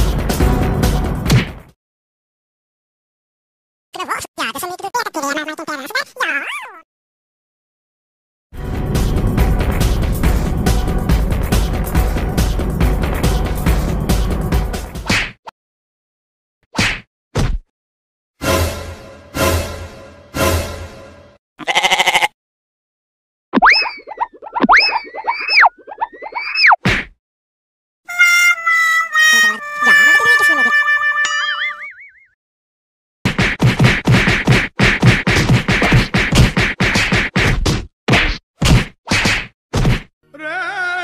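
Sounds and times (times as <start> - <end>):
quavering sheep-like bleat: 21.6 - 22.4
held wavering musical note: 28.1 - 32.3
fists whacking a body: 33.3 - 40.1.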